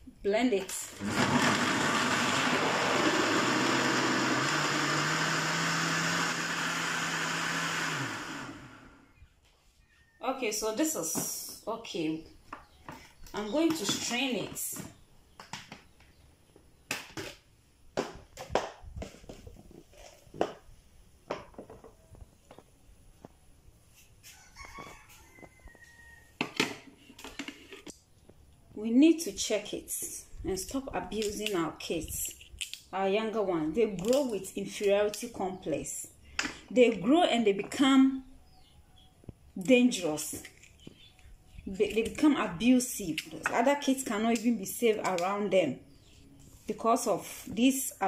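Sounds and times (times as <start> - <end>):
rooster crowing: 24.2 - 26.4.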